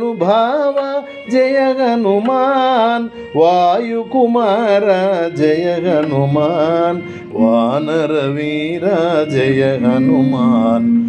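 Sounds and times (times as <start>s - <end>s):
man singing ornamented phrases: 0.0s - 11.0s.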